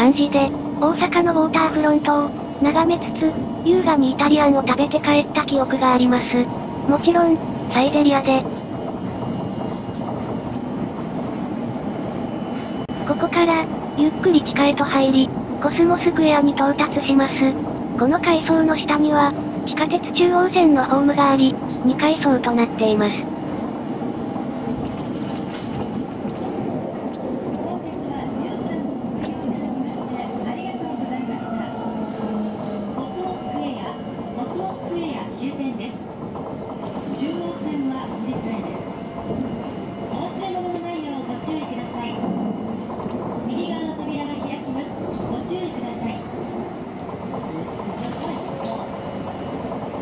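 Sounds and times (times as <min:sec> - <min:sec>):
voices: 0:00.0 - 0:08.5, 0:13.0 - 0:23.3, 0:27.5 - 0:36.2, 0:36.9 - 0:39.0, 0:40.1 - 0:46.6, 0:47.3 - 0:49.3
train running through tunnel: 0:00.0 - 0:50.0.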